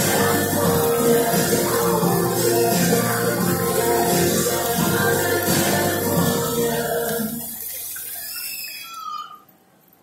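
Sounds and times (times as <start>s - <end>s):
music over fountain speakers: 0.0s - 8.4s
hiss of water jets: 0.0s - 9.4s.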